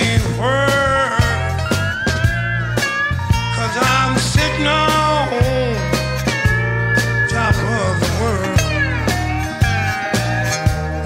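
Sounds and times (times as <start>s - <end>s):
bass line: 0.0s - 11.0s
drums: 0.0s - 11.0s
slide guitar gliding melody: 0.0s - 11.0s.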